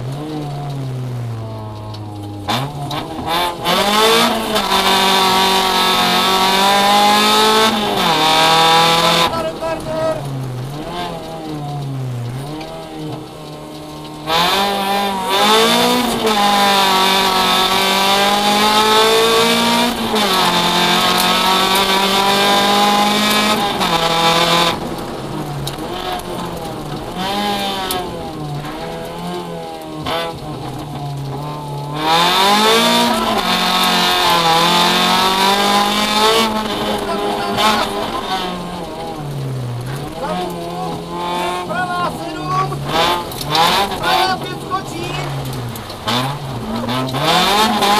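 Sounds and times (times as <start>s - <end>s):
rally car engine revving: 0.0s - 47.9s.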